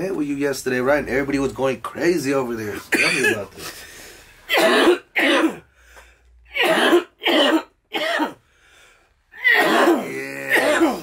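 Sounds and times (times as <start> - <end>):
man coughing hard: 2.9 - 3.5, 4.5 - 5.7, 6.5 - 8.4, 9.4 - 11.0.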